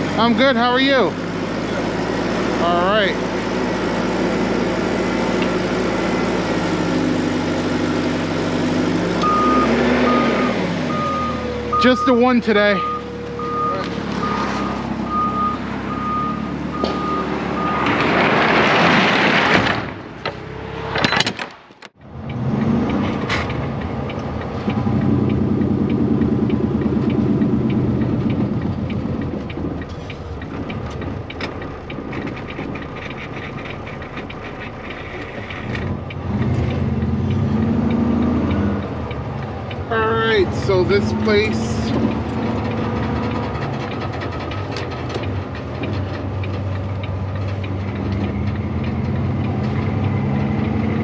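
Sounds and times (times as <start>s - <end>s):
diesel truck engine running: 0.0s - 21.0s, 22.0s - 51.0s
reversing alarm beeping: 9.2s - 18.0s.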